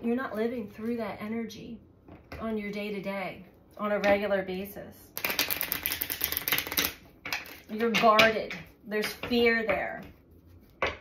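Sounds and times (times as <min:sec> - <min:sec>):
cards riffle-shuffled: 0:05.2 - 0:07.7.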